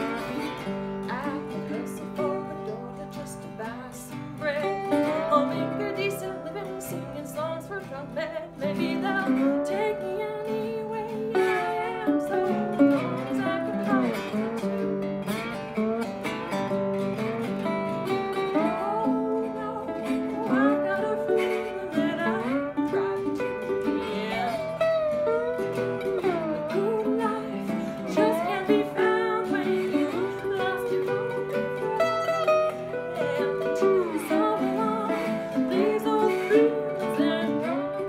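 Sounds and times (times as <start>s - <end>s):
woman singing: 0.0s - 15.8s, 16.6s - 38.0s
archtop acoustic guitar: 0.0s - 38.0s
resonator guitar: 0.0s - 38.0s.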